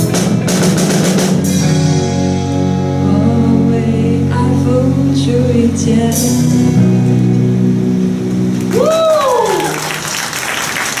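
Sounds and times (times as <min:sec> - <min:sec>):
rock band final chord: 0:00.0 - 0:09.0
applause: 0:08.6 - 0:11.0
person whooping: 0:08.7 - 0:10.3.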